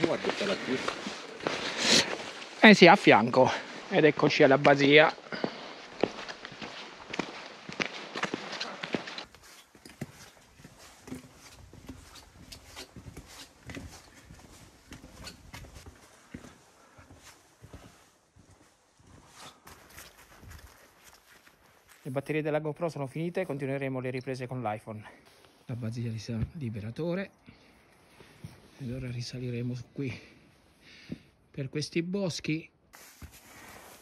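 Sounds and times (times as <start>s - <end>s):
footsteps of person walking: 0.0s - 22.1s, 33.0s - 34.0s.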